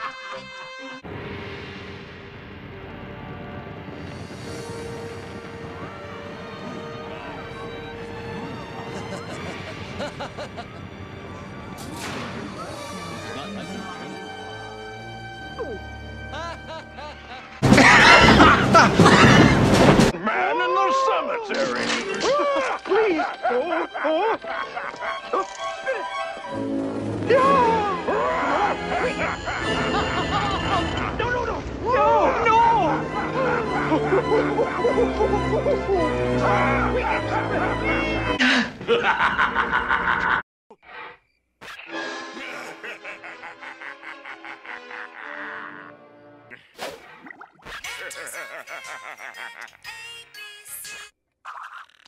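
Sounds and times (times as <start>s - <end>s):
background music: 0.0s - 20.2s, 21.4s - 39.7s, 41.8s - 47.3s
cartoon villain evil laugh: 8.8s - 10.8s, 16.3s - 19.3s, 38.9s - 40.4s, 42.4s - 46.0s, 47.9s - 49.8s.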